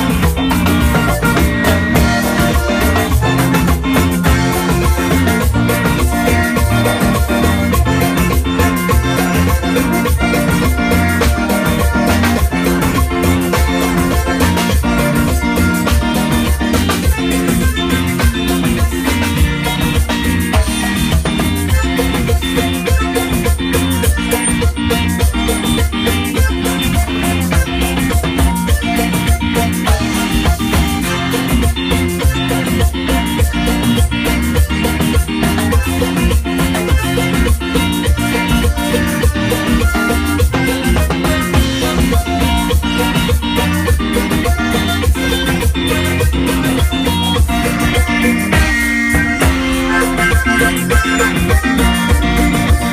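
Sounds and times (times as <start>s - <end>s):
bass: 0.0s - 52.9s
button accordion: 0.0s - 52.9s
drum kit with percussion: 0.0s - 52.9s
electric guitar: 0.0s - 52.9s.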